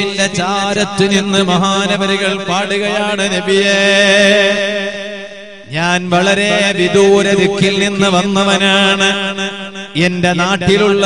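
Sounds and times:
man chanting devotional verse: 0.0 - 11.0.

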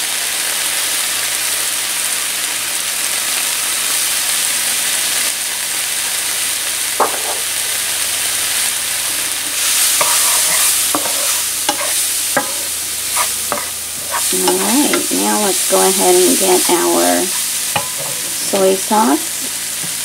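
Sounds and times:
onion and garlic sizzling in oil: 0.0 - 20.0.

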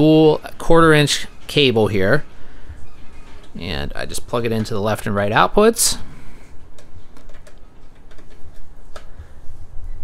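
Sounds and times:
cable handling: 6.4 - 9.7.

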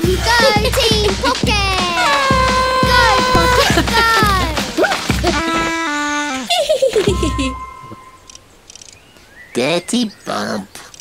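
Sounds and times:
cartoon music: 1.2 - 8.2
falling tones and pitch slides: 6.9 - 8.4.

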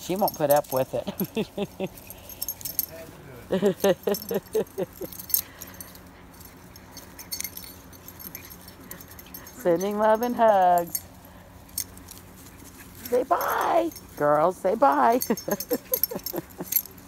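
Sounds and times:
collar tags jingling: 0.0 - 17.0
dogs play-wrestling in grass: 0.0 - 17.0
woman laughing: 0.9 - 2.2, 3.5 - 5.3, 15.1 - 16.9.

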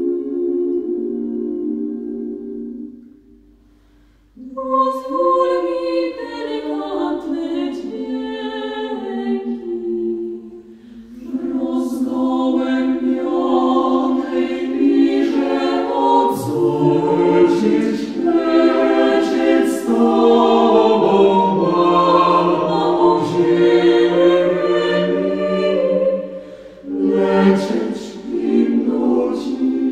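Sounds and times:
vocal group singing in harmony: 0.0 - 3.6, 4.2 - 29.9.

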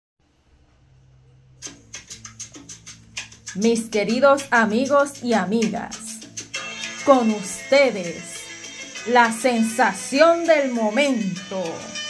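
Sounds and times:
faint low hum: 0.2 - 2.5.

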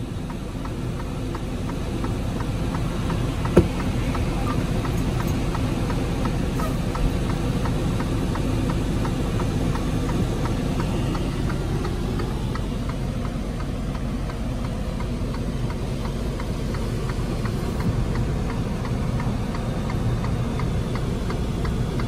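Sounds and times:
diesel truck engine rumble: 0.0 - 22.0
light regular ticking: 0.0 - 22.0.

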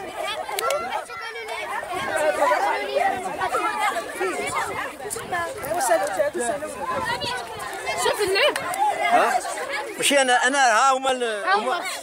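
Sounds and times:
people chattering outdoors: 0.0 - 12.0.

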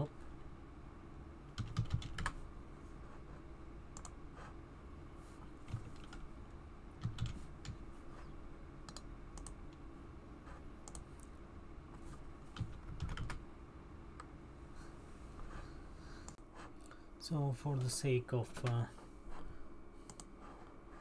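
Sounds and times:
computer keyboard typing: 1.6 - 2.4, 5.6 - 6.3, 7.0 - 7.8, 8.9 - 9.6, 12.5 - 13.4.

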